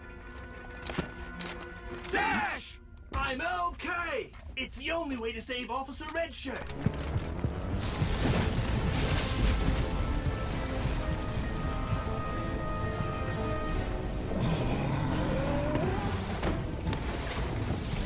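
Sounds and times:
dramatic cartoon music: 0:06.6 - 0:18.0.

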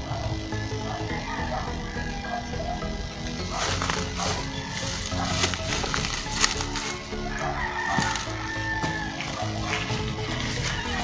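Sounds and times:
background music: 0:00.0 - 0:11.0
rooster crowing: 0:00.0 - 0:11.0.

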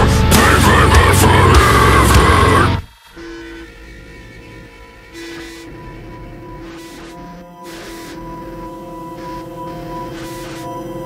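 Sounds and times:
faint ambient music: 0:00.0 - 0:11.0
train horn blasts: 0:03.1 - 0:03.8, 0:04.5 - 0:09.4.

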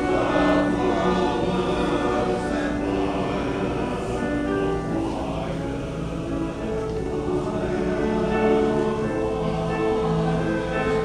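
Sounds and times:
men's choir singing in harmony: 0:00.0 - 0:11.0.

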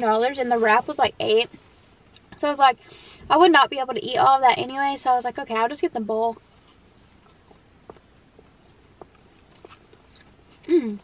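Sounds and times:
quiet chewing: 0:06.4 - 0:11.0.

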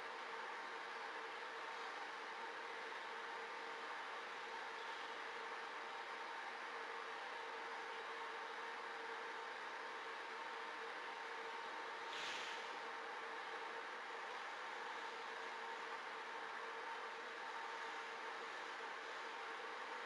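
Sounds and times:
faint constant hum: 0:00.0 - 0:20.0.

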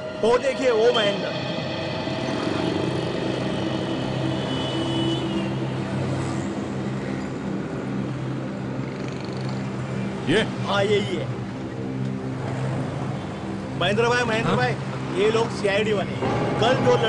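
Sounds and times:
vehicle engines passing by: 0:01.4 - 0:17.0.

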